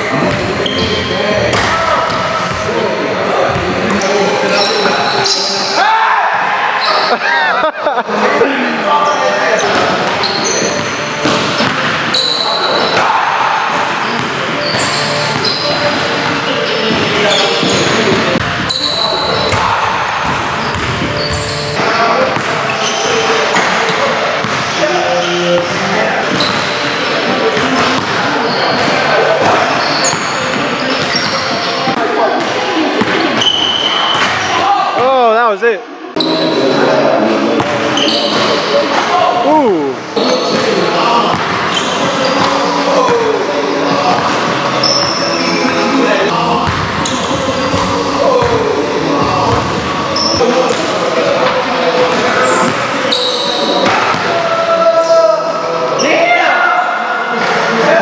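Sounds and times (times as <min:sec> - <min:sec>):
voices echoing in hall: 0:00.0 - 0:58.0
basketballs bouncing on hardwood: 0:46.6 - 0:46.9.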